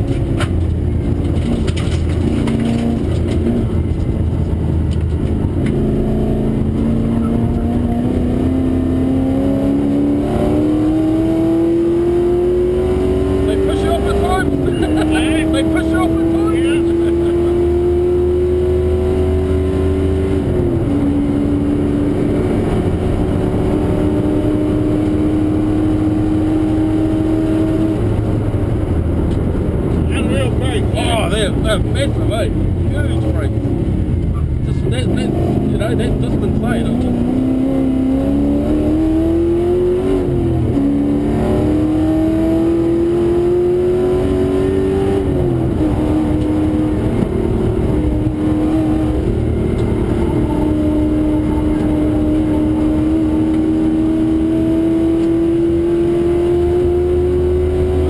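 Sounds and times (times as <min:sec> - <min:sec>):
gear changes: 0:00.0 - 0:58.0
race car engine accelerating: 0:00.0 - 0:58.0.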